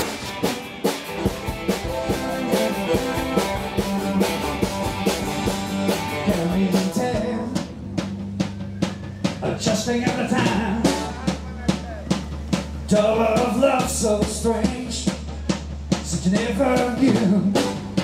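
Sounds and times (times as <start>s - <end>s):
live rock band playing: 0.0s - 18.0s
person singing: 6.1s - 7.7s, 9.4s - 11.2s.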